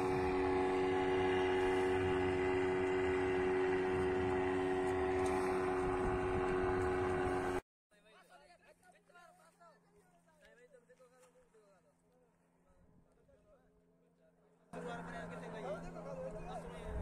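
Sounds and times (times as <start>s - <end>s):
small motor droning: 0.0s - 7.6s, 14.8s - 17.0s.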